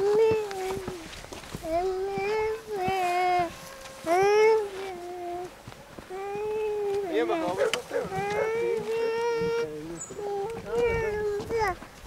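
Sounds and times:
animal crying: 1.7 - 11.4.

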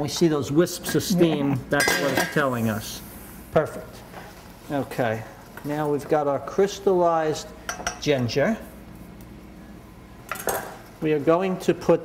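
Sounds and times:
kitchen utensils clattering: 1.8 - 2.4.

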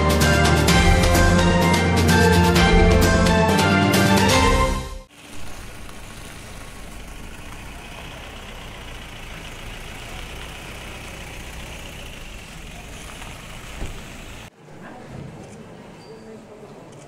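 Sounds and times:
short thump: 13.8 - 14.0.

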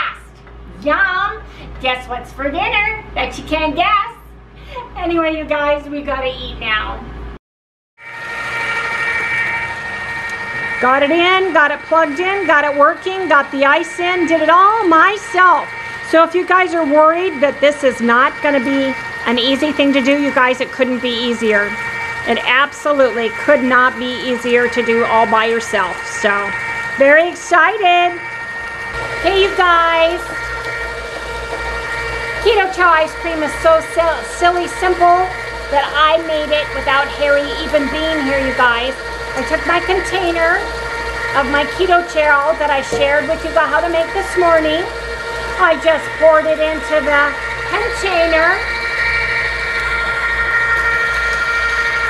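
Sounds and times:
ice cream maker motor whining: 8.0 - 52.0.

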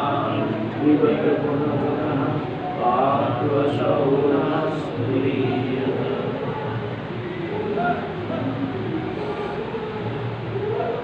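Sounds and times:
man chanting in held tones: 0.0 - 11.0.

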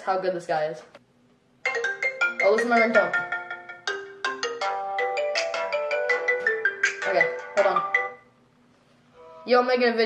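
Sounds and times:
smartphone ringtone melody: 1.6 - 8.3.

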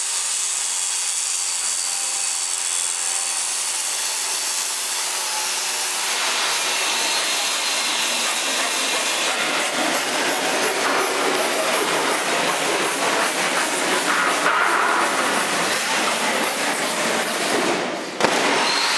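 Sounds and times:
continuous hissing rush of tools: 0.0 - 18.9.

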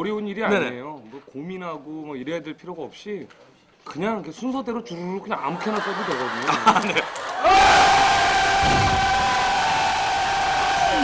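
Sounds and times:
group cheering in unison: 5.8 - 11.0.

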